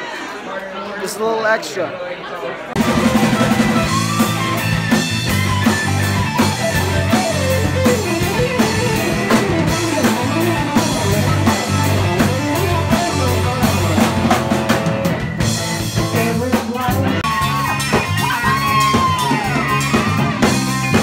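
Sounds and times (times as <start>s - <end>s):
drum kit beat: 2.8s - 21.0s
electric guitars: 2.8s - 21.0s.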